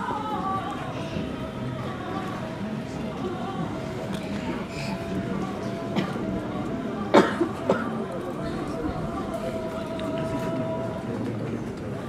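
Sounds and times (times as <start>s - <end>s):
murmur of crowd voices: 0.0s - 12.0s
person coughing: 7.1s - 8.0s.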